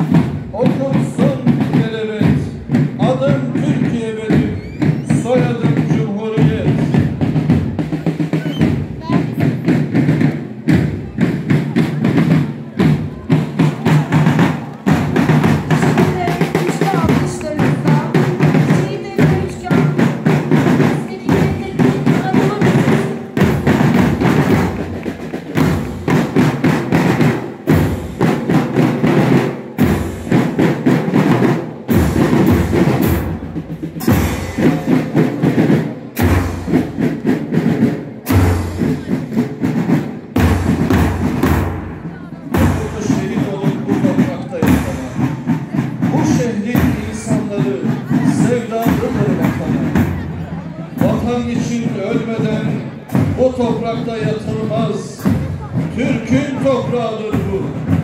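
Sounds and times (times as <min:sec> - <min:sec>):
bass and snare drums beating: 0:00.0 - 0:58.0
marching band playing: 0:00.0 - 0:58.0
bugles sounding: 0:11.0 - 0:57.8.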